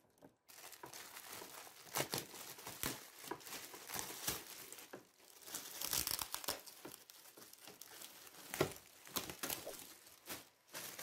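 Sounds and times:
plastic packaging crinkling and tearing: 0:00.4 - 0:11.0.

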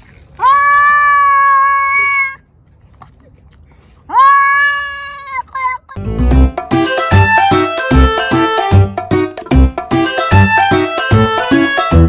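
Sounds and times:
cat yowling: 0:00.4 - 0:02.4, 0:04.1 - 0:06.0.

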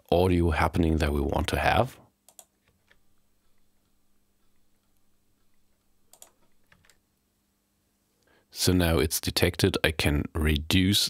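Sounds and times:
faint steady hum: 0:00.0 - 0:11.0
computer input clicks: 0:06.1 - 0:07.0.

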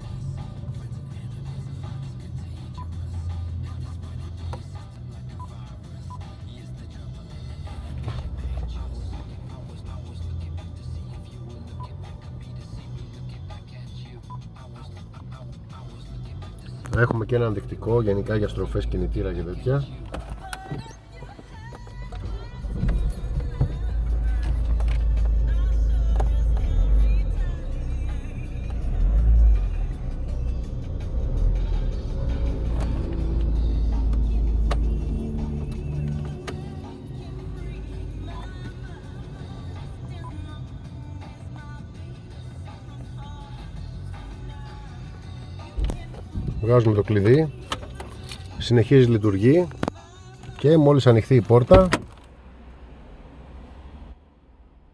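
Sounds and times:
background music: 0:00.0 - 0:52.0
car engine revving: 0:22.2 - 0:49.4, 0:51.6 - 0:54.9.

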